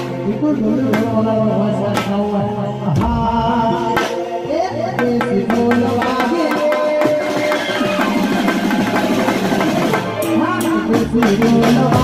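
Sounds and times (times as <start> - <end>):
keyboard and drum kit: 0.0 - 12.0
fast drumming with sticks: 5.0 - 12.0.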